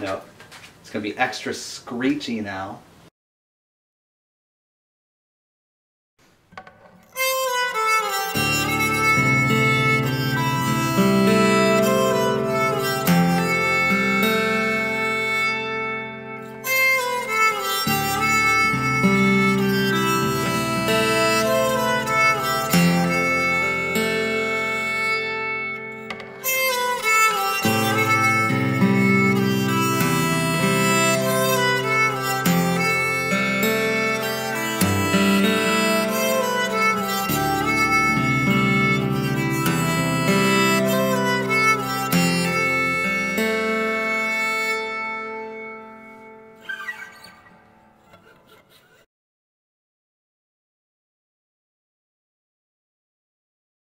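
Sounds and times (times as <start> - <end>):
acoustic guitar played with bow: 6.5 - 49.0
fingerpicked guitar notes: 6.6 - 49.0.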